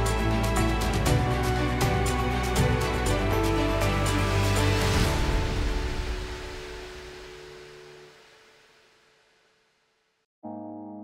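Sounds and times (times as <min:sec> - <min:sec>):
background music: 0:00.0 - 0:08.7, 0:10.4 - 0:11.0.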